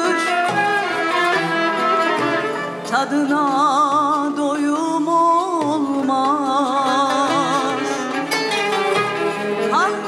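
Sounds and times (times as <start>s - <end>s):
instrumental ensemble playing: 0.0s - 4.9s, 6.1s - 10.0s
plucked kanun notes: 0.0s - 10.0s.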